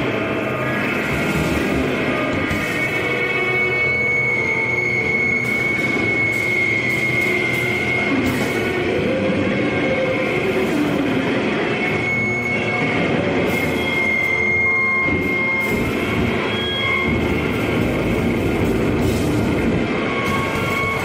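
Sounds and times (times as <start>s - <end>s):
band playing distorted guitar noise: 0.0s - 21.0s
high feedback squeal: 0.0s - 21.0s.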